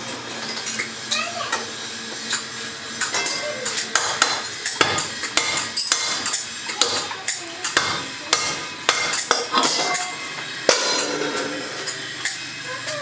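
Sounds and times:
hammer striking metal lid: 3.9s - 7.1s, 7.7s - 11.4s.

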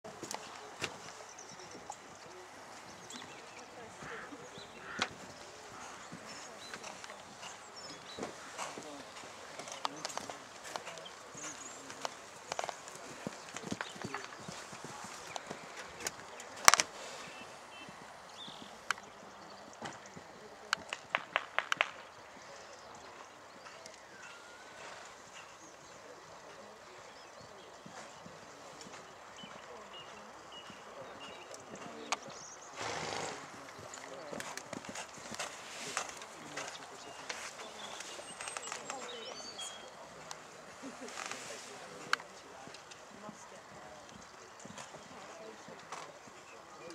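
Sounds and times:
horse hooves on sand: 0.0s - 46.9s
horse hoofbeats on sand: 0.1s - 16.4s
hoof clicks: 0.1s - 46.9s.

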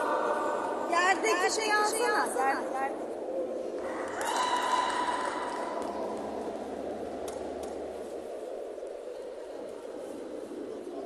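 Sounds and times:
sports hall ambience: 0.0s - 11.0s.

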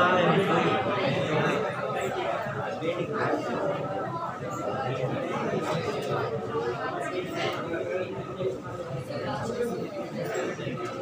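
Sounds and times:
overlapping voices chattering: 0.0s - 11.0s.

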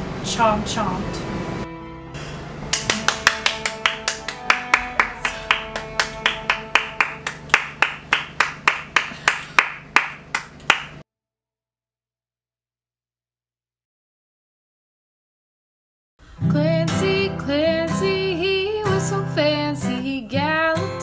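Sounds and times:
background music with held notes: 1.1s - 7.5s
rhythmic hand claps: 2.7s - 11.0s.

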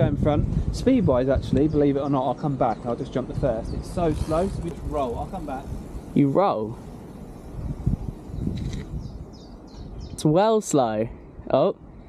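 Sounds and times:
mountain bike rolling on dirt: 0.0s - 10.1s
wind rumbling on microphone: 0.0s - 12.0s.

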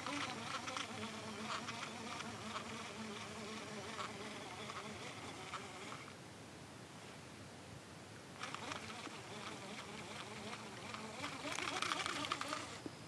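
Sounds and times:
insect buzzing: 0.0s - 6.2s, 8.4s - 13.0s.

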